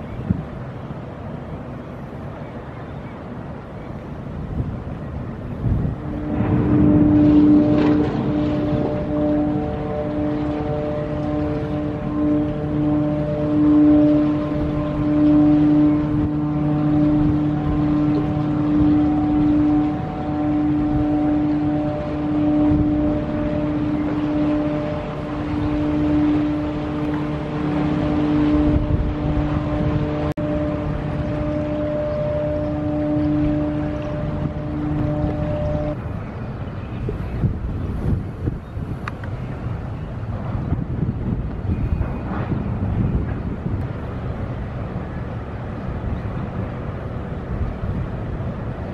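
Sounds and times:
wind rumbling on microphone: 0.0 - 48.9
diesel machinery humming: 4.9 - 48.9.

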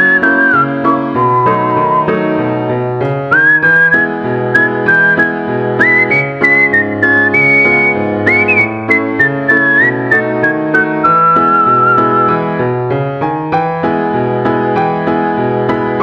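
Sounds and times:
whistled melody: 0.0 - 12.6.

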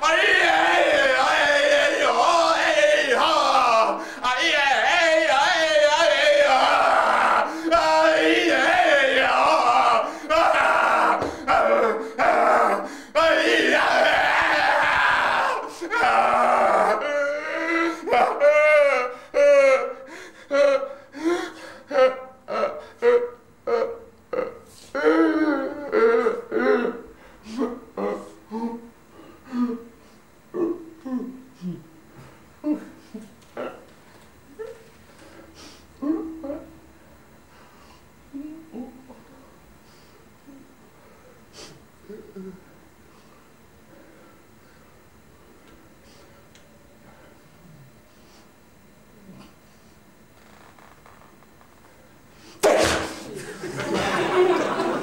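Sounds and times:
faint low vocal sound: 15.6 - 34.9, 36.0 - 36.9, 38.3 - 39.6, 40.3 - 44.8.

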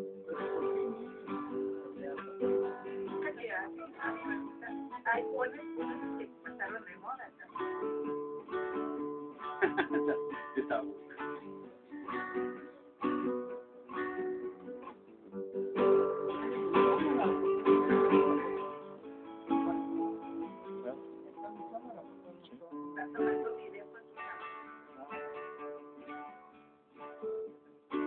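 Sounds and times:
acoustic guitar playing: 0.0 - 28.0.

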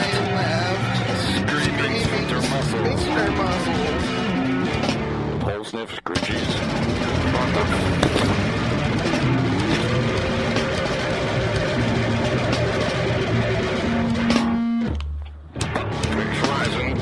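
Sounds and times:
heavy metal band playing: 0.0 - 5.4, 6.2 - 14.8, 15.6 - 17.0.

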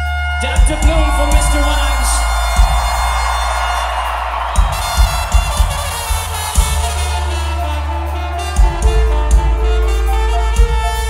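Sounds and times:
live band music: 0.0 - 11.0
trumpet line: 0.0 - 11.0
kick drum hits: 2.5 - 3.3, 4.6 - 7.0.

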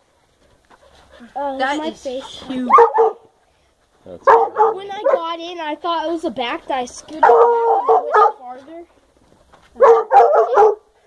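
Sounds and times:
dog barking: 2.5 - 3.3, 4.1 - 5.4, 7.1 - 8.5, 9.8 - 10.9.

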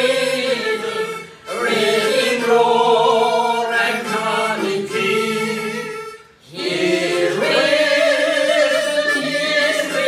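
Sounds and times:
hymn singing: 0.0 - 10.0.

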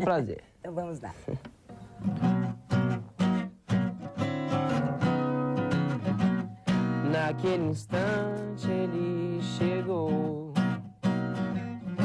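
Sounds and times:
acoustic guitar chords ringing: 1.9 - 12.0.

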